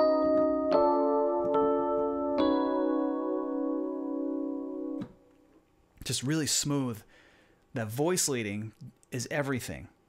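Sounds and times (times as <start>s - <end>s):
sustained piano chord: 0.0s - 5.0s.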